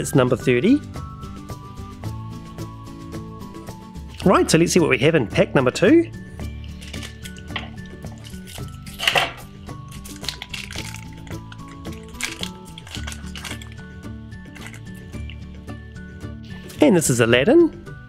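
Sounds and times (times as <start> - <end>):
background music: 0.0 - 18.0
foil pack crinkling: 6.7 - 13.9, 14.5 - 15.4.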